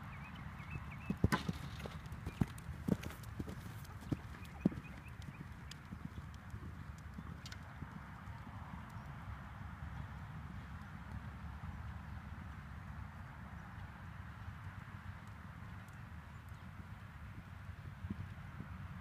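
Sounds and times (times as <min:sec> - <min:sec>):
horse hoofbeats on sand: 0:00.6 - 0:07.9.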